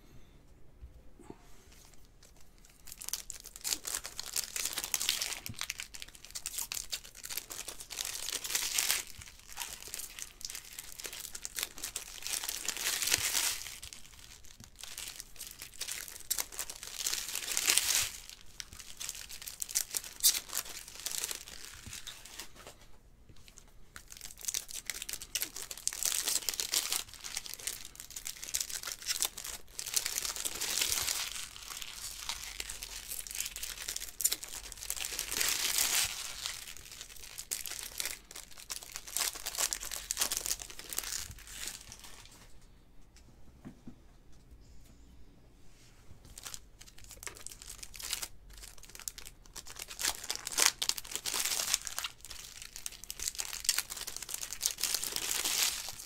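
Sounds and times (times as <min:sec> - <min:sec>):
foil wrappers tearing and crinkling: 0:02.6 - 0:22.7, 0:24.0 - 0:42.2, 0:46.4 - 0:56.0.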